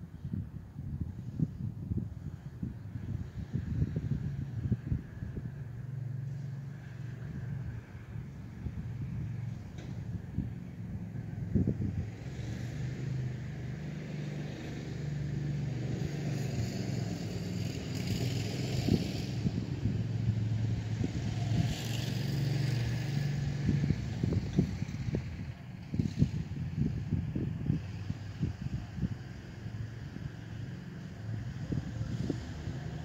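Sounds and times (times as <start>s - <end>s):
utility vehicle engine revving: 6.2s - 33.0s.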